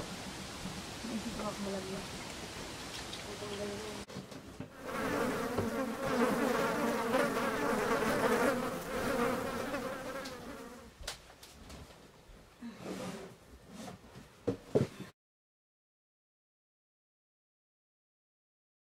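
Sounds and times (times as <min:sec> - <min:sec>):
fly buzzing: 0:04.7 - 0:10.9.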